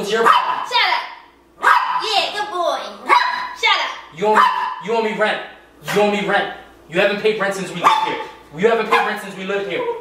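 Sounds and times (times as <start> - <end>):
small dog barking: 0.2 - 1.0, 1.6 - 2.2, 3.0 - 3.6, 4.3 - 4.9, 7.8 - 9.2.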